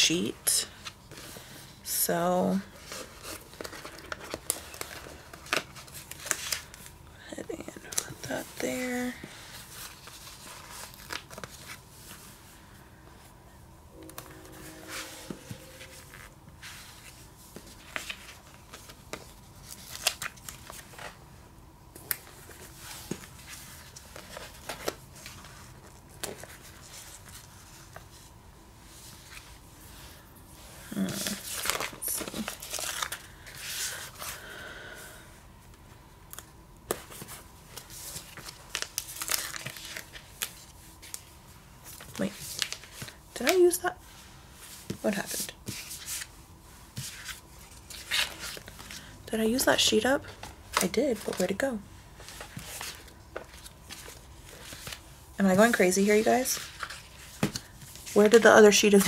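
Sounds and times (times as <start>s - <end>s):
sticker sheets crinkling: 2.8s - 6.9s, 30.9s - 34.4s, 36.4s - 43.8s, 47.0s - 59.0s.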